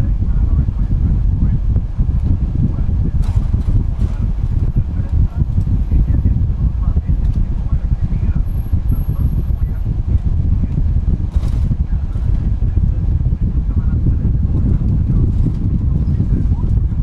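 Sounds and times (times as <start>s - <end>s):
bus engine and tyre rumble: 0.0s - 17.0s.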